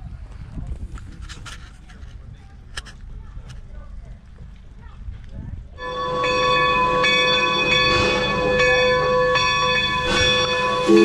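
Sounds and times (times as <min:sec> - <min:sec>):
locomotive bell ringing: 0:05.8 - 0:11.0.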